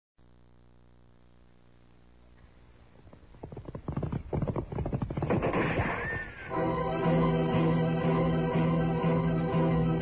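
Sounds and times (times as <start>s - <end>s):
low recording hum: 0.2s - 10.0s
rapid uneven thuds: 3.0s - 5.9s.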